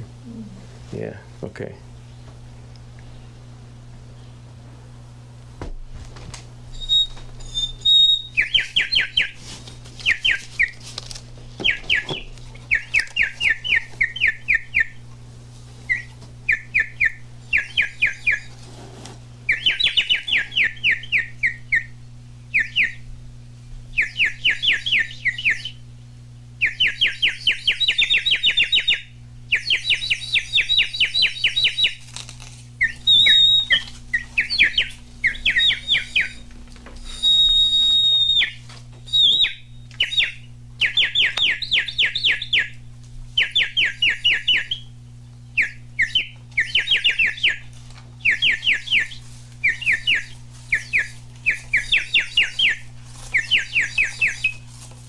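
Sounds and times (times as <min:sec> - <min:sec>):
bird whistle trills: 0:06.7 - 0:09.4, 0:15.9 - 0:18.5, 0:19.5 - 0:21.9, 0:22.5 - 0:23.0, 0:23.9 - 0:25.8, 0:26.6 - 0:32.0, 0:32.8 - 0:42.8, 0:43.4 - 0:44.9, 0:45.6 - 0:47.6, 0:48.2 - 0:52.8, 0:53.4 - 0:54.6.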